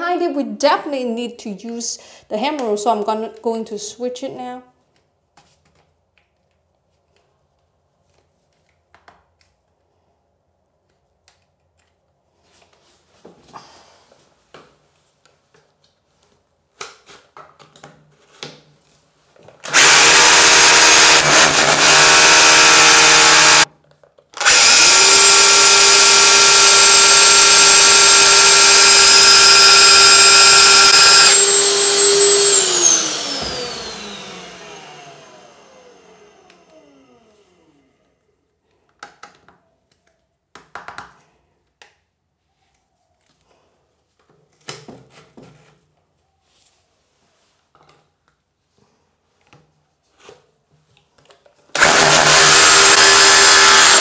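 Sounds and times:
drill motor winding down: 0:19.6 - 0:23.7, 0:24.4 - 0:37.9, 0:51.7 - 0:54.0
hammer drill boring into concrete: 0:19.6 - 0:23.7, 0:24.4 - 0:36.8, 0:51.7 - 0:54.0.

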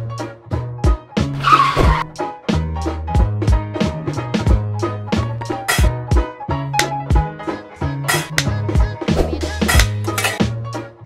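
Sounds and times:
upbeat music with drums and bass: 0:00.0 - 0:11.0
tyre screech sound effect: 0:01.4 - 0:02.1.

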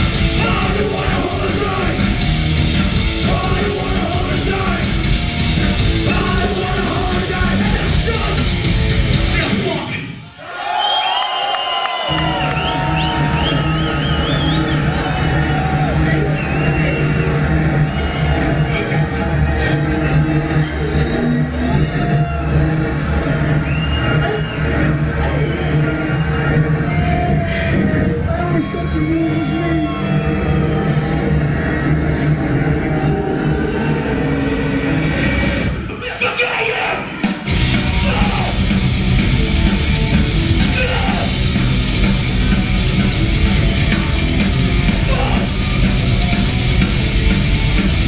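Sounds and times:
crowd whooping: 0:00.0 - 0:08.8, 0:10.2 - 0:48.0
punk band playing: 0:00.0 - 0:10.0, 0:12.1 - 0:48.0
guitar feedback squealing: 0:21.6 - 0:35.7.

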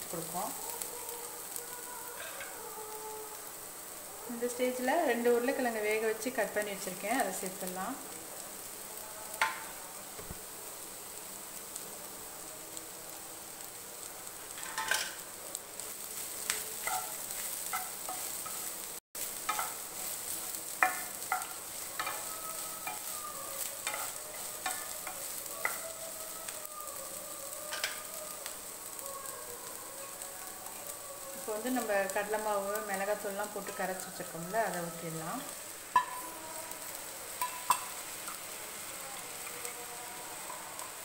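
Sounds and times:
vegetables sizzling in a pan: 0:00.0 - 0:41.0.

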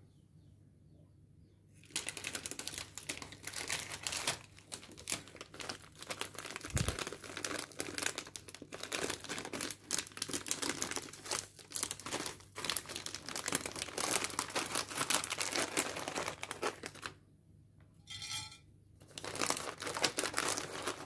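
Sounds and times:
plastic snack bag crinkling: 0:01.8 - 0:17.2, 0:19.0 - 0:21.0.

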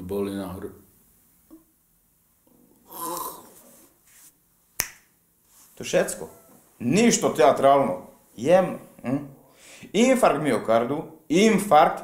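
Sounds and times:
finger snap: 0:04.8 - 0:05.1.

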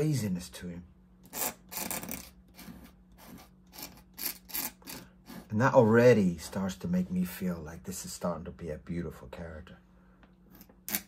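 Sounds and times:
pen nib scratching paper: 0:01.3 - 0:05.5.

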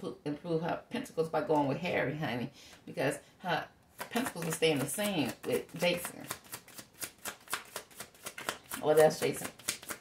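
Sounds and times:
cards being shuffled: 0:03.9 - 0:10.0.

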